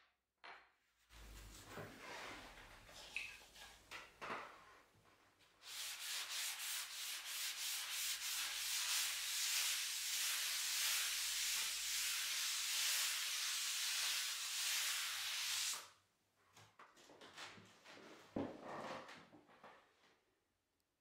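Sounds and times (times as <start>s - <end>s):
wet sponge scrubbing blackboard: 5.6s - 15.8s.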